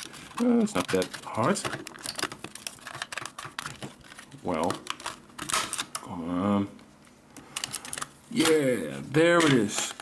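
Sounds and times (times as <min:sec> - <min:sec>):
plastic case creaking and clicking: 0:00.0 - 0:06.0.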